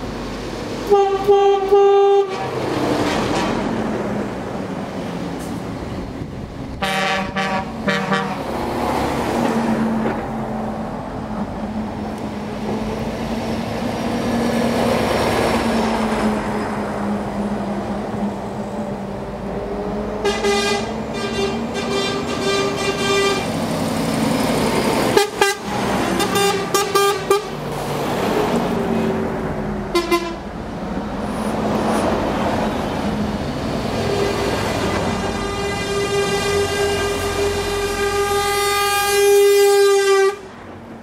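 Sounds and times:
engine and tyre noise: 0.0s - 41.0s
truck horns blasting: 0.8s - 3.7s, 6.8s - 8.6s, 20.2s - 23.6s, 25.1s - 27.6s, 29.9s - 30.5s, 34.1s - 40.6s
short horn toots: 20.2s - 23.5s.

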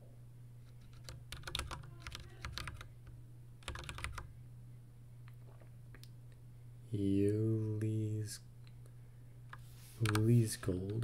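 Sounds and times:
computer keyboard typing: 0.8s - 3.0s, 3.6s - 4.3s, 10.0s - 11.0s.

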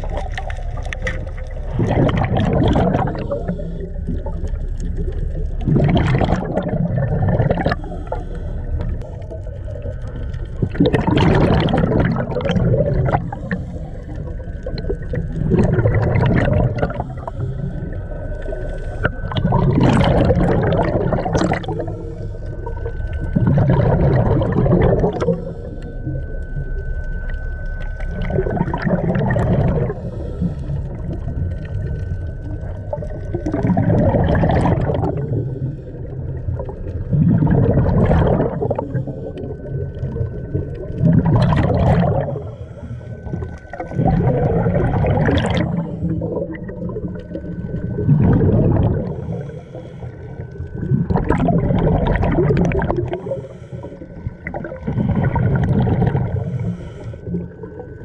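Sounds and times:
bubbling regulator exhale: 0.0s - 58.0s.

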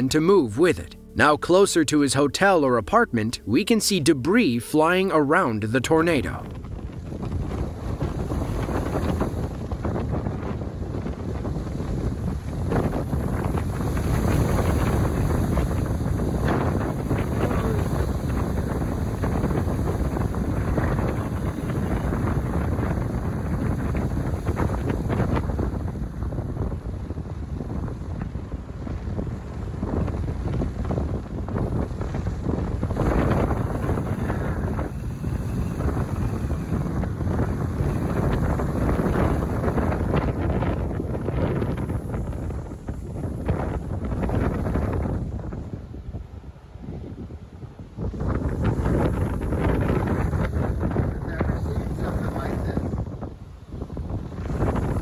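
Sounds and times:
wind buffeting microphone: 2.4s - 55.0s.

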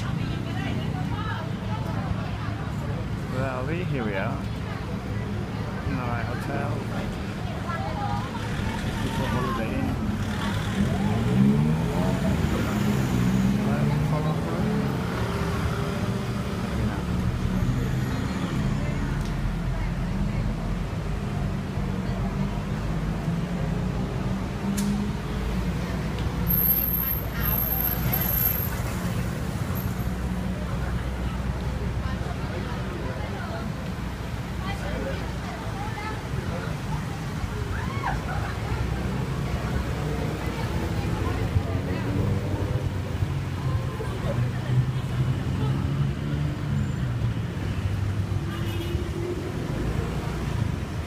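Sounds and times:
people talking: 0.0s - 23.8s, 27.2s - 46.2s
city street traffic: 0.0s - 51.0s.

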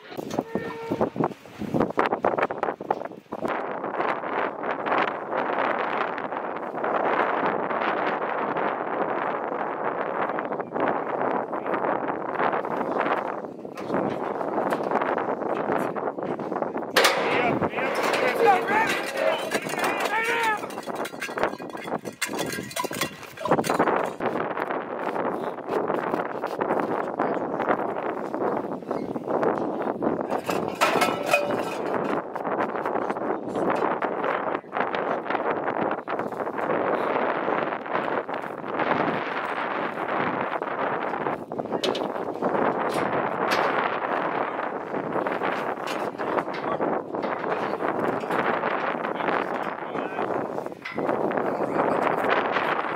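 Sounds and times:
people talking: 17.0s - 20.8s, 46.1s - 50.4s, 51.4s - 52.6s.

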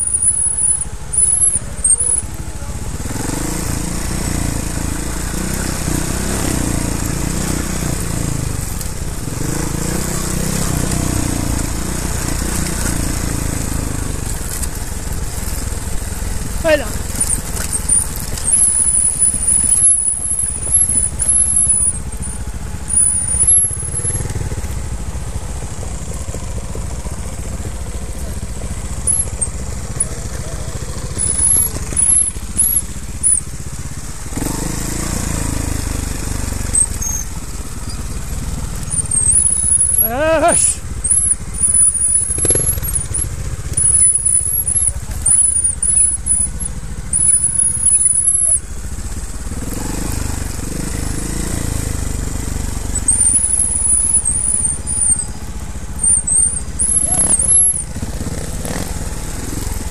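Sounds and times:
motorcycle engine running: 0.0s - 59.9s.

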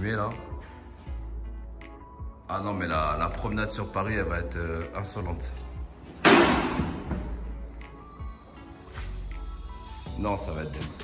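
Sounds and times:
background music: 0.0s - 11.0s
loud thud: 6.2s - 7.3s.

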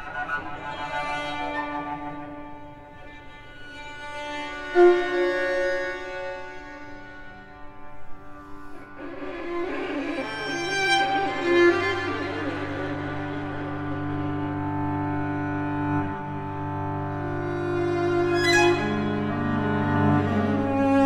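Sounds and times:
string quartet bowed notes: 0.0s - 21.0s.

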